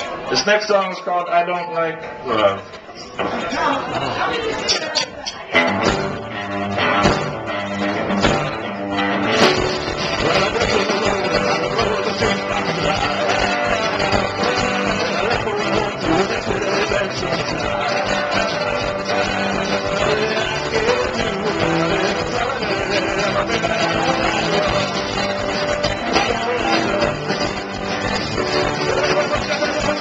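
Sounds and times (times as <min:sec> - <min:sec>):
live rock band playing: 0:05.4 - 0:30.0.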